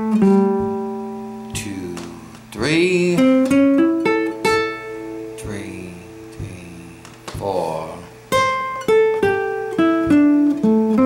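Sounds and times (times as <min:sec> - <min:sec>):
acoustic guitar blues notes: 0:00.0 - 0:11.0.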